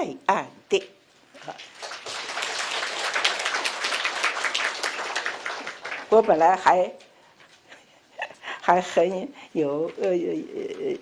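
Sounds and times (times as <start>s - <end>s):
audience applauding: 1.5s - 6.6s.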